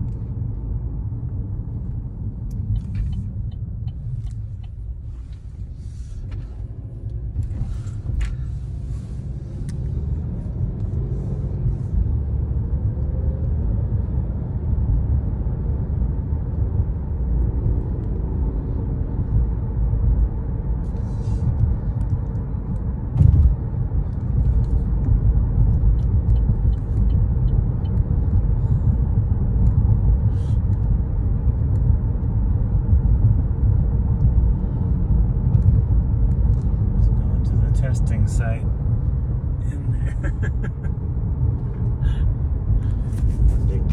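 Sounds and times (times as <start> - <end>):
car cabin road and engine rumble: 0.0 - 43.9.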